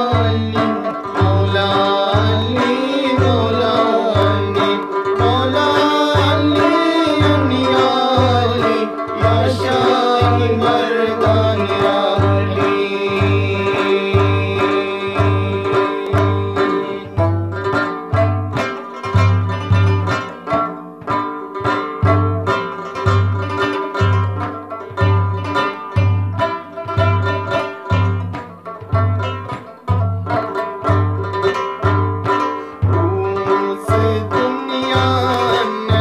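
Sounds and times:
plucked string instrument: 0.0s - 36.0s
steady low drumbeat: 6.1s - 21.3s, 21.9s - 36.0s.

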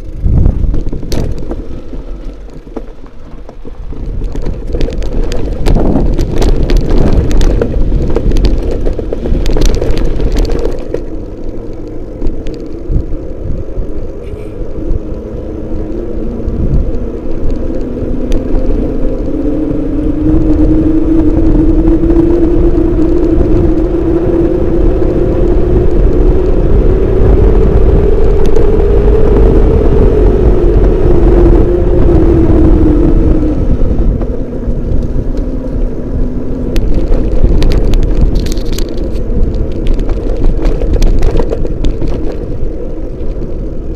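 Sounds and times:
motor whine rising in pitch: 0.0s - 43.9s
road rumble: 0.0s - 43.9s
wind noise: 0.0s - 43.9s.

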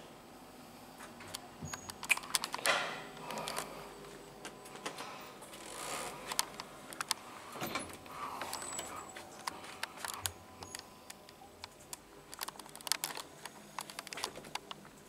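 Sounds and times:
light clicks and ticks: 6.3s - 7.2s, 7.8s - 15.0s
elevator doors closing: 7.5s - 9.1s.

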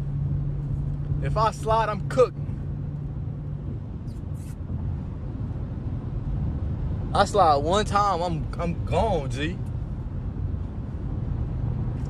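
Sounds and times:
car engine and tyres rumbling: 0.0s - 12.0s
short hisses: 4.1s - 4.6s.

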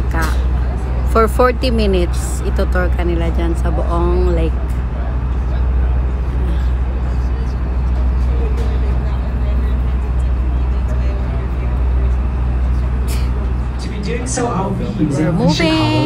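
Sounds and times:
boat engine idling: 0.0s - 16.0s.

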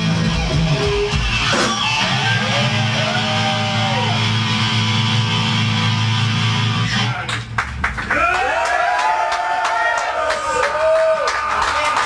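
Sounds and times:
distorted guitar and bass drone: 0.0s - 7.6s
bending guitar line: 0.1s - 7.4s.

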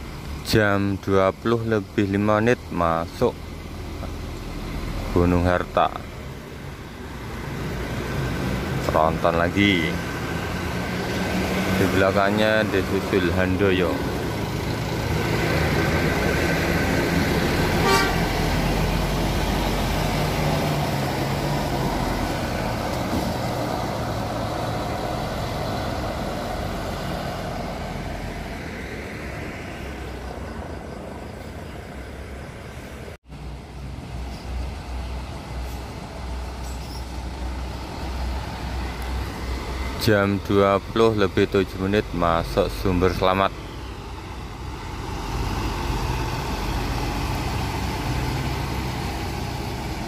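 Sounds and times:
bus diesel engines passing: 0.0s - 50.0s
bus engine pulsing: 0.0s - 50.0s
bus horn toot: 17.8s - 18.5s.

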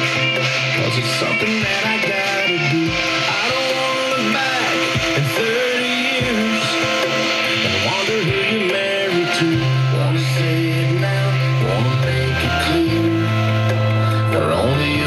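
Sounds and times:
country music on car radio: 0.0s - 15.0s.

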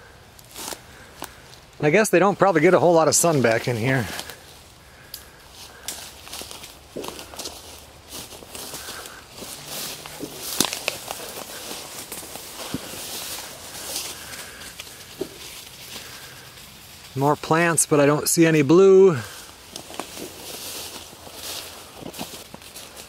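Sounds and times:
twigs crackling underfoot: 0.0s - 23.0s
vegetation swishing against legs: 5.6s - 17.1s, 19.3s - 23.0s.

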